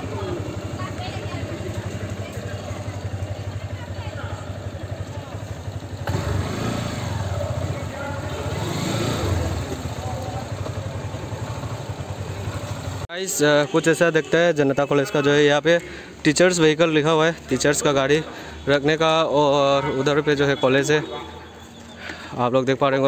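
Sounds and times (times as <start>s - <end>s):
motorcycle engine running: 0.0s - 13.1s.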